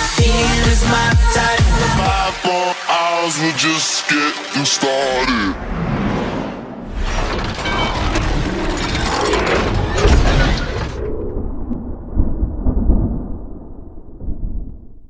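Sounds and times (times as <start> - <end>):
low rumble: 5.5 - 15.0
shattering crash: 6.9 - 11.2
deep booms: 9.6 - 15.0.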